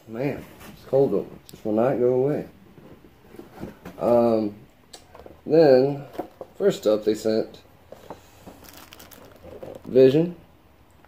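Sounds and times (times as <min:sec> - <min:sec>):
plastic packaging crinkling: 0:07.9 - 0:10.2.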